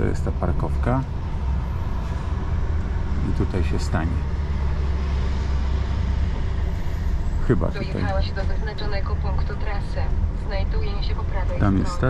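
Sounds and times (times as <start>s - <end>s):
diesel engine rumbling: 0.0s - 12.0s.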